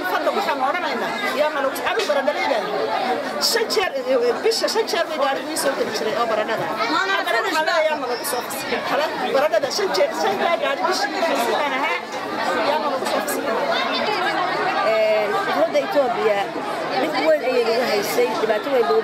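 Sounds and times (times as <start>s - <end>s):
voices chattering: 0.0s - 19.0s.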